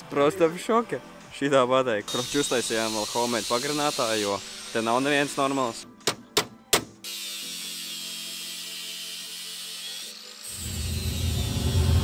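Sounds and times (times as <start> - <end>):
power tool whirring: 2.1 - 5.7, 7.0 - 12.0
angle grinder cutting metal: 2.1 - 5.8, 7.0 - 12.0.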